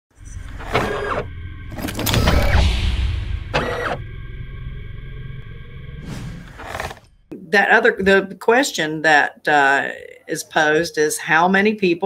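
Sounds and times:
deep rumble: 0.2 - 7.3
steady held tones: 0.2 - 7.5.

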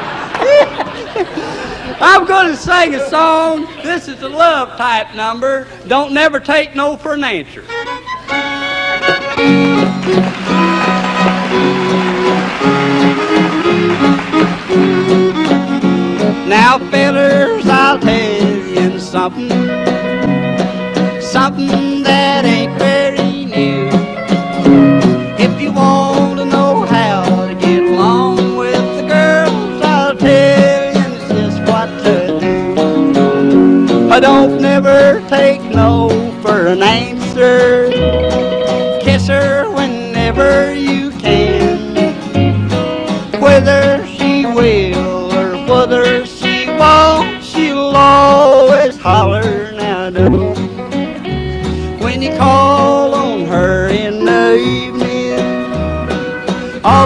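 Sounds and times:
guitar accompaniment: 0.0 - 5.9, 7.2 - 57.0
country fiddle playing: 7.5 - 57.0
person singing: 11.5 - 13.1, 16.4 - 19.9, 21.0 - 24.2, 25.2 - 32.9, 34.1 - 38.4, 39.0 - 42.3, 43.2 - 50.7, 51.4 - 57.0.

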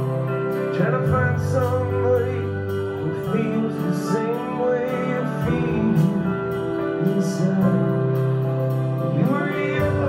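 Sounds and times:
electric bass: 0.0 - 10.0
person singing: 0.0 - 10.0.

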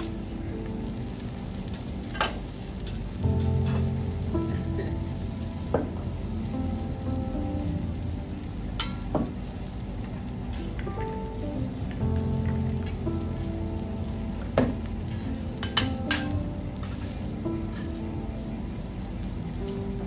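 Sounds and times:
food sizzling on griddle: 0.0 - 20.0.

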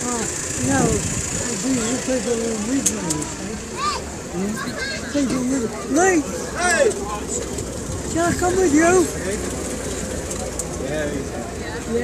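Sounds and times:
people talking in background: 0.0 - 12.0
steady outdoor hum: 0.0 - 12.0.

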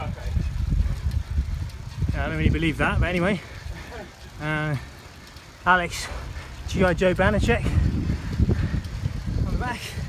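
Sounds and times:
bicycle tyre and road noise: 0.0 - 10.0
wind buffeting microphone: 0.0 - 10.0.

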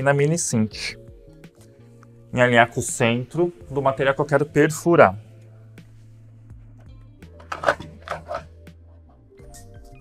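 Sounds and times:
soft background music: 0.0 - 10.0
paper rustling: 7.4 - 8.5.

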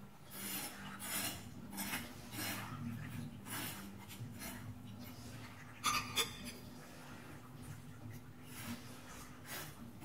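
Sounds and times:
rasping hissing scrapes: 0.3 - 2.8, 3.4 - 4.7, 8.5 - 10.0.

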